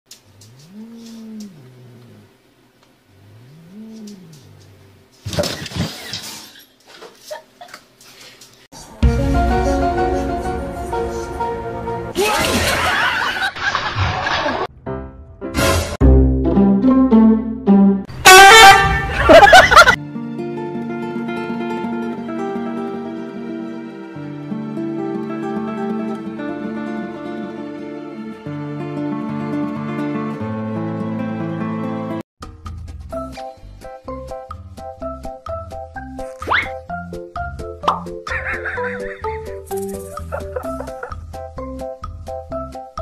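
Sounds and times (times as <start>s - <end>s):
cat yowling: 0.5s - 2.3s
loud horn-like honk: 18.1s - 19.2s.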